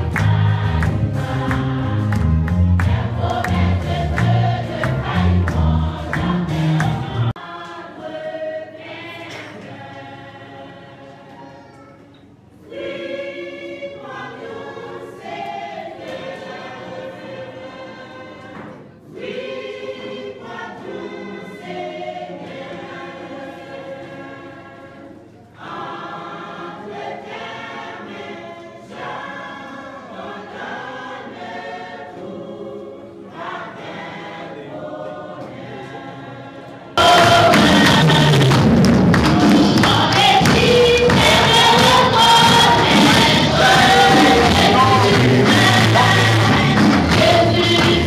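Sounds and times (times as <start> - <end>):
group of voices singing: 0.0 - 11.6, 12.6 - 48.0.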